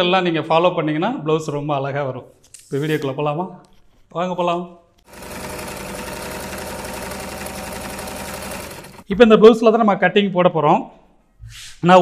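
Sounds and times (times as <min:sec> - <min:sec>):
sewing machine stitching: 0:05.0 - 0:09.1.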